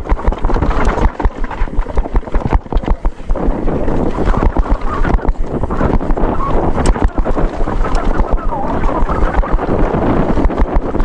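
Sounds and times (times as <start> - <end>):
bike knocks and rattles: 0.0 - 8.3
tyres rumbling on dirt: 0.0 - 11.0
wind buffeting microphone: 0.0 - 11.0.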